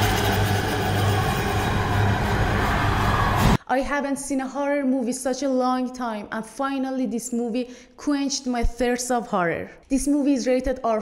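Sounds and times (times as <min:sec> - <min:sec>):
deep hum: 0:00.0 - 0:03.6
loud rumbling roar: 0:00.0 - 0:03.6.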